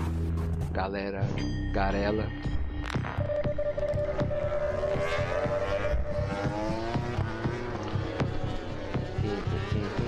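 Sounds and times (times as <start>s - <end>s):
vehicle engine revving: 3.1s - 10.0s.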